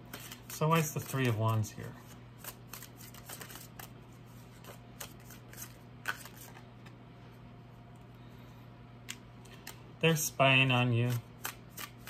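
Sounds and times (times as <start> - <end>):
cards being shuffled: 0.0 - 7.0, 10.9 - 12.0
faint low hum: 0.0 - 12.0.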